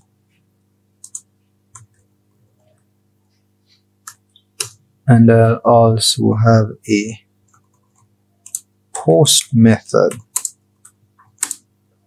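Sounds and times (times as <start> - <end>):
keyboard keystrokes: 1.0 - 2.0, 10.1 - 11.6.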